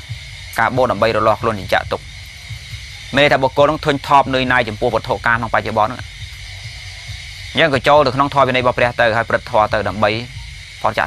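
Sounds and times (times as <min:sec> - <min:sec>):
background hiss: 0:00.0 - 0:11.0
man preaching: 0:00.6 - 0:02.0, 0:03.1 - 0:06.1, 0:07.6 - 0:11.0.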